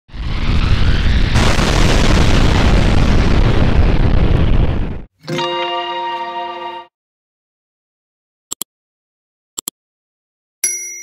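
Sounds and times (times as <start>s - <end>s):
deep rumbling logo burst: 0.1s - 5.1s.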